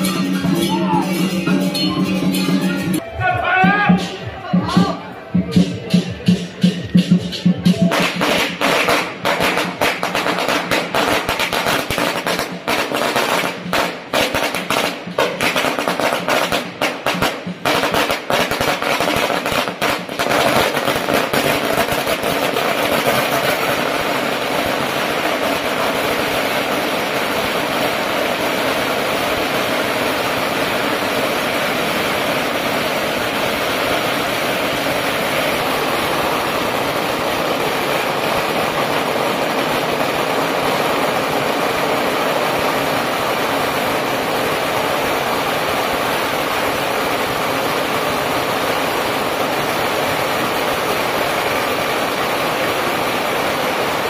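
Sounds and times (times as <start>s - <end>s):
firecrackers crackling: 0.0s - 54.0s.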